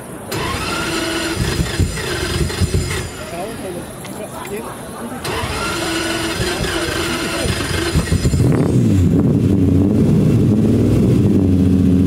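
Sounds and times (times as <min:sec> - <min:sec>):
car engine starting: 0:00.0 - 0:04.2, 0:05.1 - 0:12.0
starter motor cranking: 0:00.3 - 0:03.6, 0:05.2 - 0:08.8.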